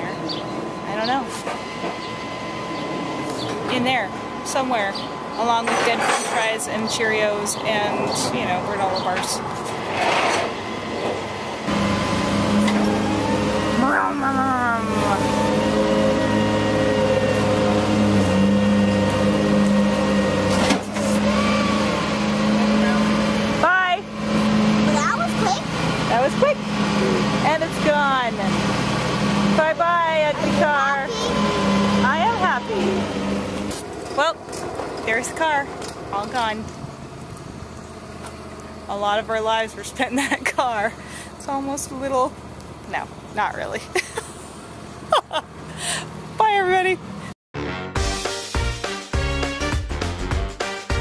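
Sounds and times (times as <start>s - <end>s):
truck engine and hydraulics humming: 0.0s - 47.4s.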